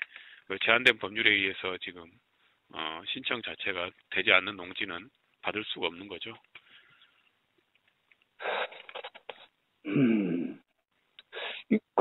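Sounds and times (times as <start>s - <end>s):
voice saying mm: 9.9s - 10.6s.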